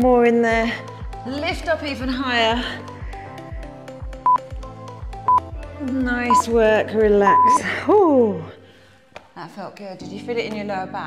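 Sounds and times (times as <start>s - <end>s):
music with steady beat: 0.8s - 7.7s.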